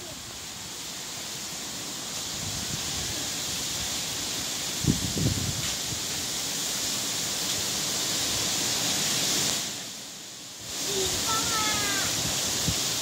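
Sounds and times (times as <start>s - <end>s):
steady outdoor hiss: 0.0s - 13.0s.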